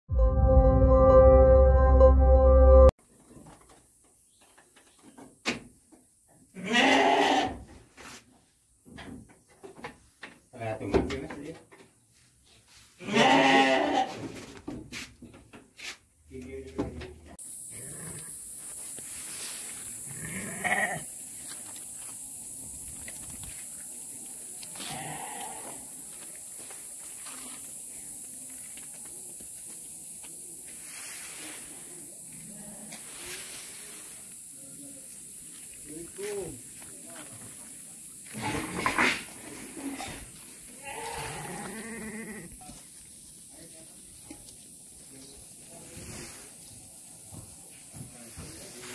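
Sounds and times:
sheep bleating loudly: 6.6 - 7.5, 13.0 - 14.1, 20.1 - 21.0, 24.8 - 25.8, 40.8 - 42.5
steady high-pitched hiss: 14.8 - 48.9.

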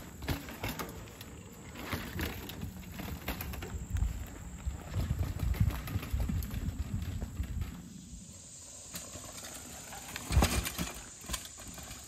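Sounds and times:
bike clatter: 0.0 - 8.0, 8.8 - 12.0
bike rolling on dirt trail: 0.0 - 12.0.

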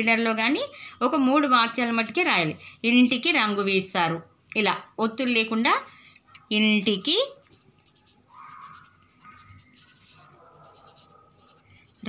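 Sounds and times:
pencil scratching on paper: 6.9 - 12.0.

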